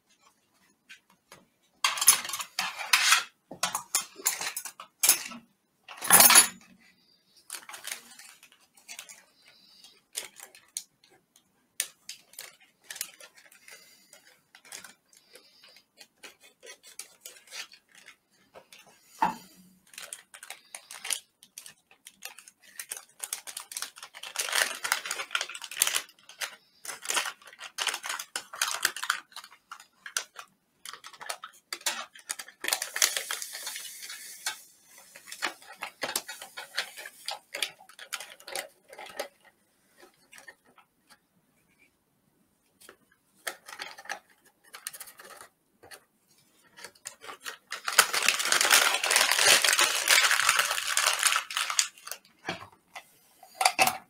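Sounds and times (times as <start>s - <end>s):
plastic packaging crinkling: 1.8s - 41.2s, 42.8s - 54.0s
plastic packets being torn open: 1.9s - 6.0s, 7.0s - 11.2s, 11.8s - 40.9s, 42.8s - 52.6s.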